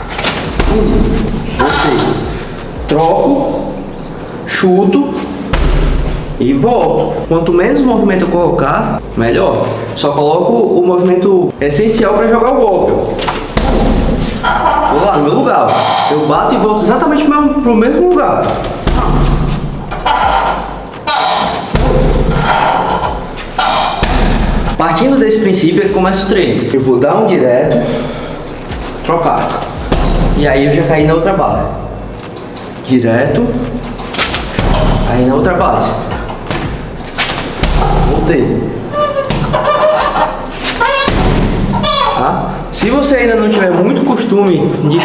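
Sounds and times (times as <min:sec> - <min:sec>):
kicks thudding on punching bag: 0:05.5 - 0:06.2, 0:13.2 - 0:14.3, 0:18.5 - 0:19.7, 0:23.9 - 0:24.8, 0:29.8 - 0:30.5, 0:34.2 - 0:35.2, 0:36.4 - 0:38.2, 0:41.0 - 0:41.8
bare feet squeaking on rubber mat: 0:18.4 - 0:24.4, 0:38.9 - 0:43.0.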